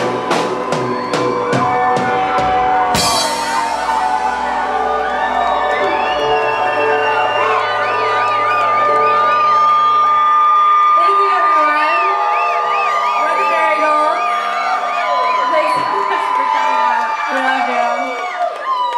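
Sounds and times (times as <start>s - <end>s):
live band holding final note: 0.0s - 10.9s
audience cheering and whooping: 0.0s - 18.9s.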